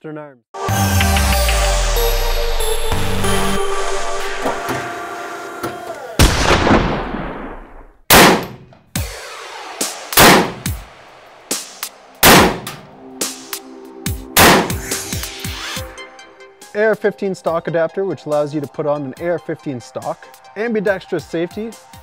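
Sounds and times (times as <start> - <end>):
electronic music: 0.6 - 6.2, 9.0 - 16.6
rifle shots ringing: 6.2 - 8.7, 10.2 - 10.7, 12.2 - 12.8, 14.4 - 14.8.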